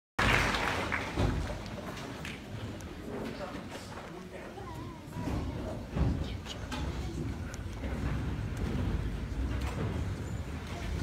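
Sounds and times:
murmur of audience talking: 0.2 - 11.0.

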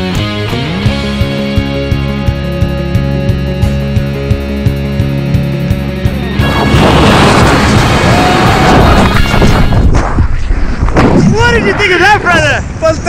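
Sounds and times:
people whooping: 6.4 - 9.4
wind rushing over microphone: 6.4 - 13.0.

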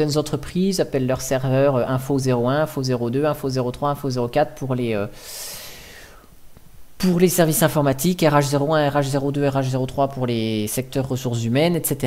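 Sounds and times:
man speaking: 0.0 - 5.2, 7.0 - 12.0
man breathing: 5.1 - 6.4.

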